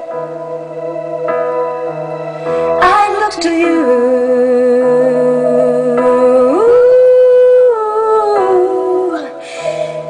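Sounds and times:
voice singing pop ballad: 2.4 - 10.0.

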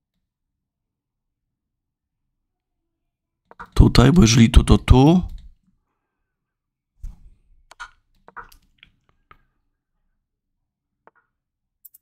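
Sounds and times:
computer mouse clicks: 11.1 - 12.0.

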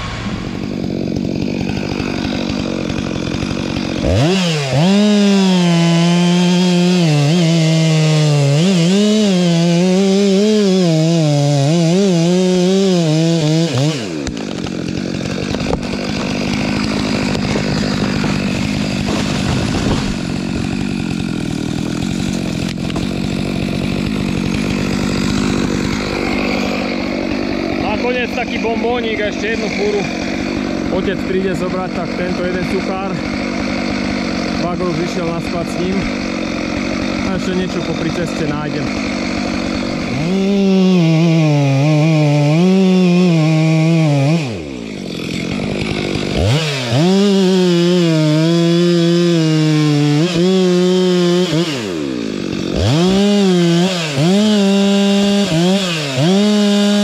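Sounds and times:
tractor engine running: 0.0 - 5.4, 14.0 - 41.0
chainsaw cutting wood: 0.0 - 57.0.

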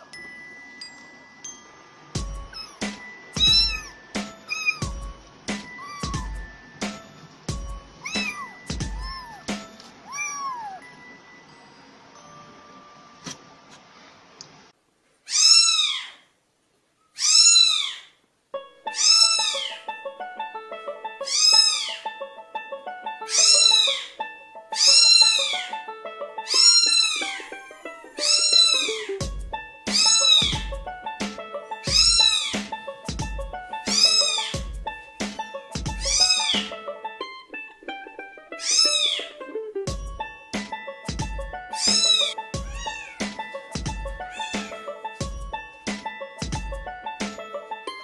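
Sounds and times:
background music with low beat: 2.1 - 10.0, 29.1 - 37.1, 39.8 - 47.8
kitten meowing: 2.5 - 5.0, 5.7 - 6.5, 8.0 - 10.8, 15.3 - 16.2, 17.2 - 18.1, 18.9 - 19.8, 21.3 - 22.0, 23.3 - 24.1, 24.8 - 25.7, 26.5 - 27.5, 28.2 - 29.1, 29.9 - 30.6, 31.8 - 32.6, 33.9 - 34.6, 36.0 - 36.7, 38.6 - 39.3, 41.7 - 43.3, 44.3 - 44.8.

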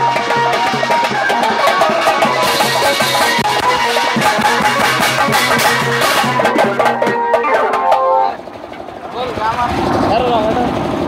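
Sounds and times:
pitched sound over drumming: 0.0 - 9.5
fast rhythmic drumming: 0.0 - 11.0.

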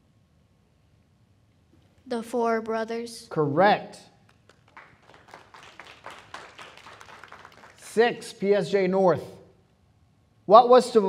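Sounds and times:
faint scattered clapping: 4.2 - 8.0.

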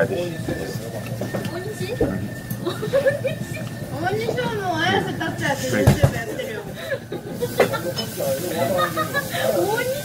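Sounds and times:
voices talking: 0.0 - 10.0.

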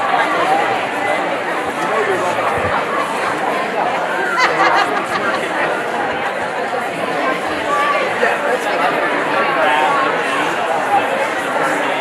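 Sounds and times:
crowd of people talking: 0.0 - 12.0.

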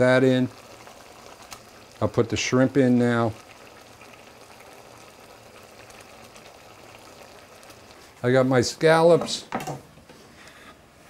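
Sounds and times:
stew simmering in a pot: 0.0 - 9.2.

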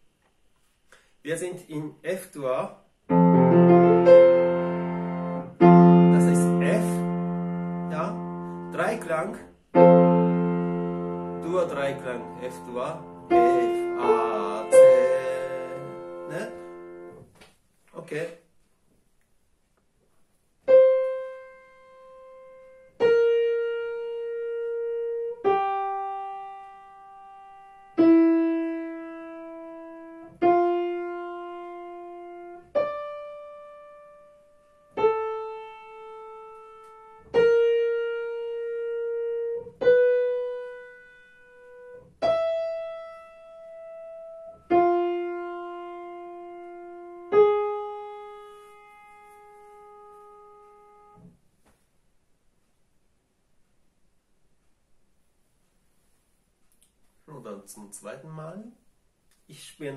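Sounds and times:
piano single notes: 3.1 - 17.4, 20.6 - 51.4.

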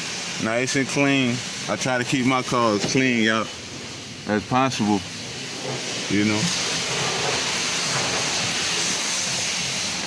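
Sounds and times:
steady rushing hiss: 0.0 - 10.0.

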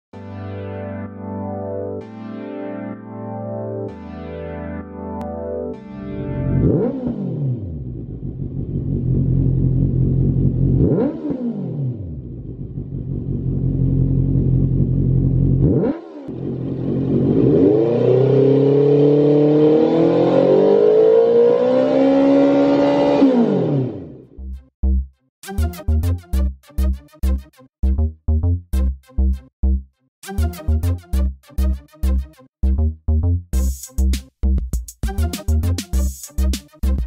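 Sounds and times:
motorcycle engine revving: 6.5 - 24.2.

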